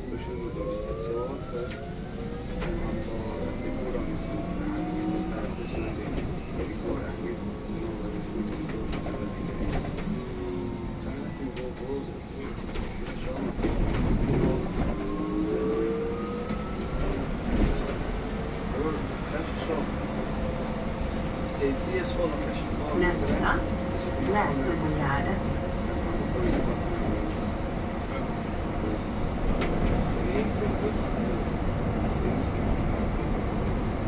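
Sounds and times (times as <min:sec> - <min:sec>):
electric bus motor whining: 0:00.0 - 0:34.0
low road rumble: 0:00.0 - 0:34.0.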